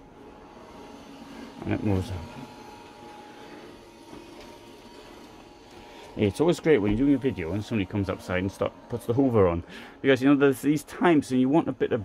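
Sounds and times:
vacuum cleaner running: 0.0s - 12.0s.

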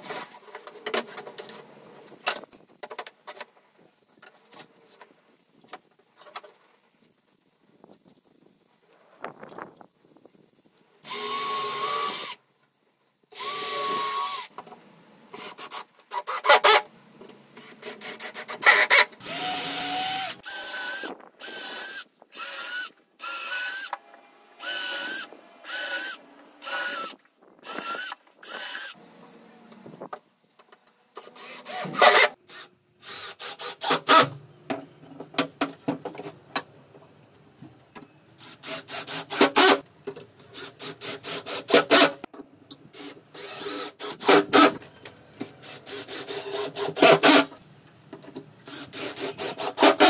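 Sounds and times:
cordless drill running into wood: 11.0s - 12.4s, 13.4s - 14.5s, 18.6s - 29.0s, 43.0s - 44.8s.

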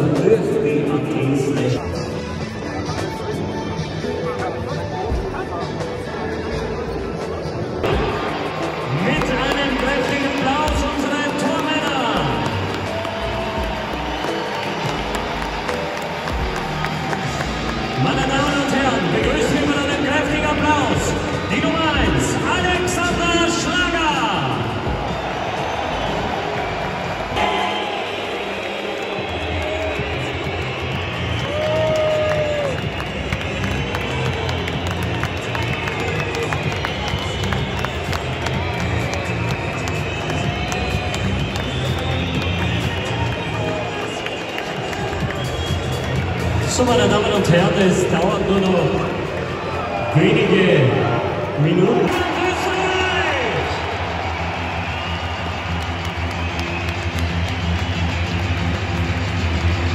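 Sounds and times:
crowd chatter: 0.0s - 22.5s
music over stadium loudspeakers: 0.0s - 59.9s.

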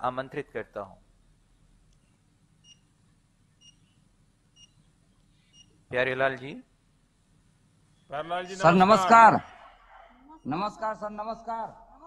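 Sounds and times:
high electronic beeps: 10.3s - 10.8s.

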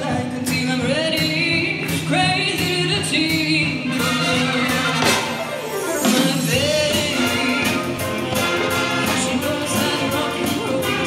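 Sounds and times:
big band playing: 0.0s - 11.0s
person singing: 0.0s - 11.0s.

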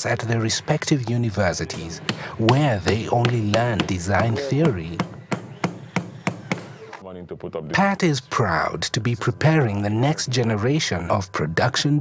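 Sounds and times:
hammer blows: 1.6s - 7.0s.

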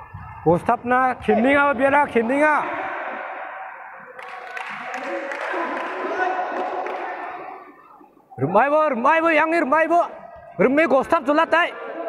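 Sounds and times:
shout echoing in hall: 0.0s - 12.0s.

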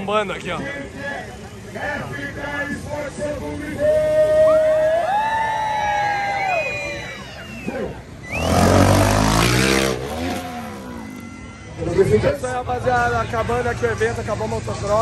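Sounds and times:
dirt bike engine revving: 8.2s - 11.4s.

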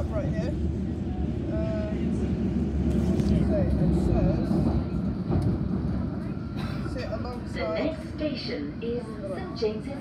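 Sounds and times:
underground train rumbling: 0.0s - 10.0s.

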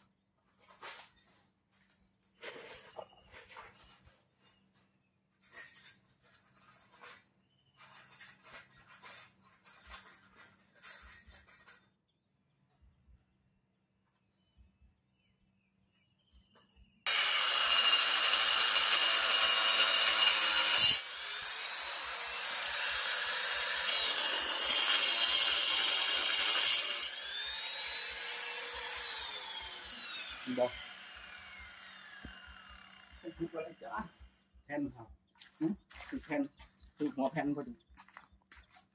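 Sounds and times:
power cutter cutting tile: 17.1s - 34.0s.

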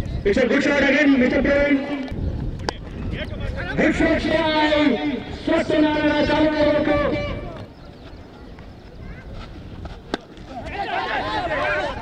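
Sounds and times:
outdoor background: 0.0s - 12.0s.

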